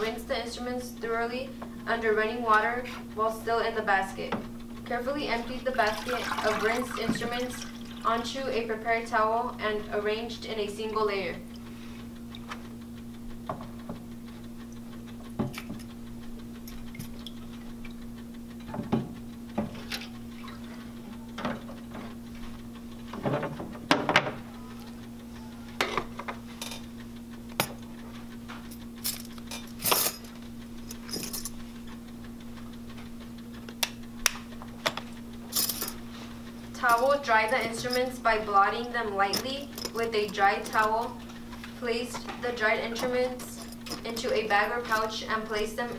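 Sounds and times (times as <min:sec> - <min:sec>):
steady low hum: 0:00.0 - 0:45.9
metal instruments clinking: 0:29.0 - 0:31.6.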